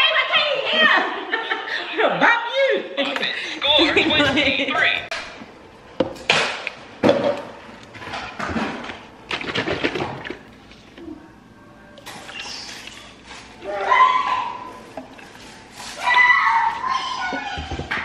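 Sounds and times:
kitchen items clunking on countertop: 6.0s - 9.0s, 17.3s - 18.0s.

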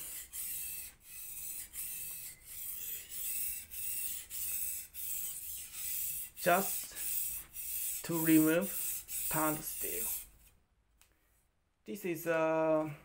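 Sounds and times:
knife scraping on sharpening stone: 0.0s - 10.3s.

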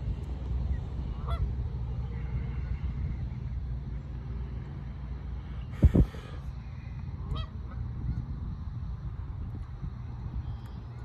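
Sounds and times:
steady low rumble: 0.0s - 11.0s
geese calling: 1.0s - 3.5s, 7.2s - 8.2s.

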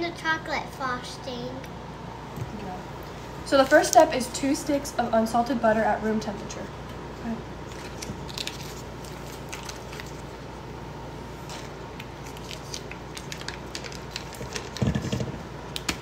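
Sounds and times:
paper wrappers crinkling: 7.7s - 10.5s, 11.4s - 16.0s.

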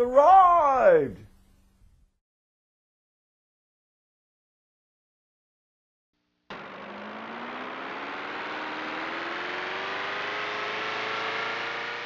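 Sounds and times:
flying saucer engine drone: 6.5s - 12.0s
rising whine: 6.5s - 12.0s.

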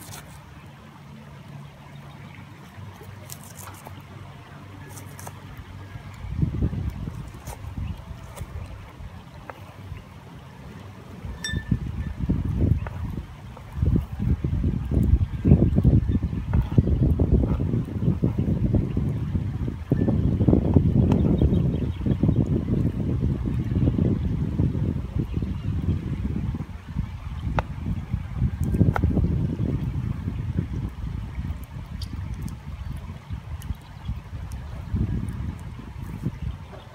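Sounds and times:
wind buffeting microphone: 1.4s - 36.9s.

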